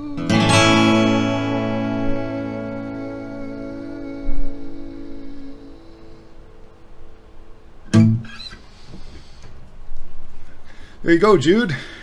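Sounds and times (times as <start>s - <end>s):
acoustic guitar chord ringing: 0.0s - 8.4s
loud strike on guitar strings: 7.9s - 8.3s.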